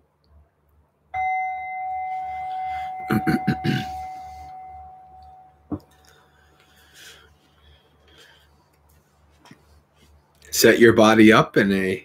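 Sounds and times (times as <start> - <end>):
meditation bell ringing: 1.2 - 5.7.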